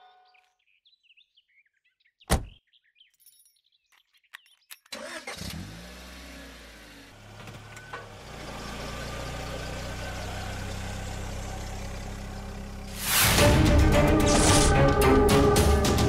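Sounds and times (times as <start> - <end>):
car engine starting and idling: 4.9 - 16.0.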